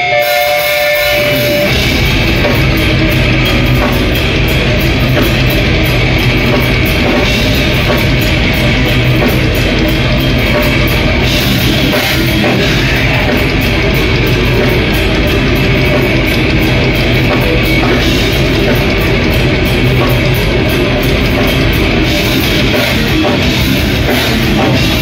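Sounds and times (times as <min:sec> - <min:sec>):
guitar feedback: 0:00.0 - 0:25.0
live metal band playing: 0:00.0 - 0:25.0.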